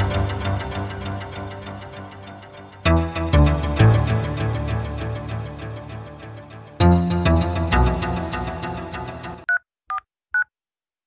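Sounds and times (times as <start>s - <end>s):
background music: 0.0s - 9.5s.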